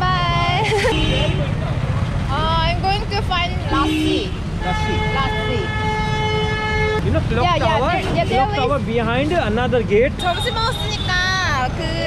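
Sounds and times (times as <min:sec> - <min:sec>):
low traffic rumble: 0:00.0 - 0:12.0
vehicle horn blasts: 0:03.7 - 0:07.0, 0:10.2 - 0:11.3.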